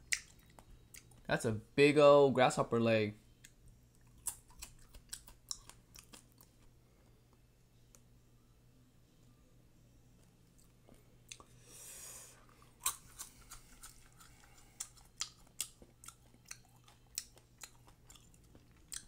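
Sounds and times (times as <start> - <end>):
crisp chewing crunches: 4.0 - 6.7, 12.5 - 19.0.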